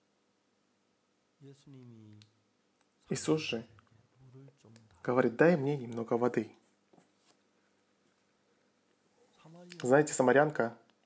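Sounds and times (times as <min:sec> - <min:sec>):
man's soft wordless voice sound: 0:01.4 - 0:02.4, 0:03.0 - 0:06.6, 0:09.3 - 0:10.8.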